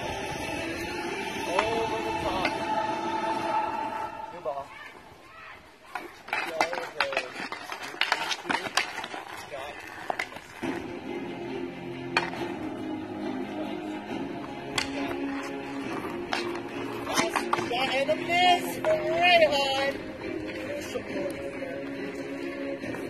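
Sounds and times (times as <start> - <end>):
music playing: 0.0 - 4.6, 10.6 - 23.0
hockey sticks clacking on asphalt: 1.4 - 2.7, 4.9 - 23.0.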